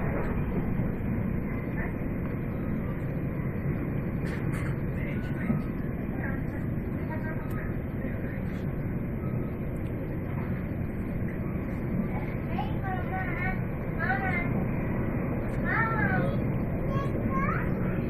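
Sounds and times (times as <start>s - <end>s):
electric train rumbling: 0.0s - 18.0s.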